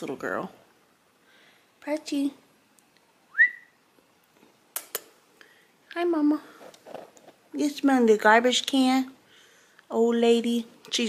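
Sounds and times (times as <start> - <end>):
person whistling: 3.3 - 3.8.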